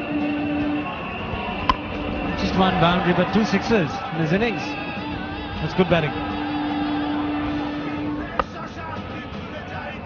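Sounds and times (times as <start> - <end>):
cricket crowd noise: 0.0 - 10.0.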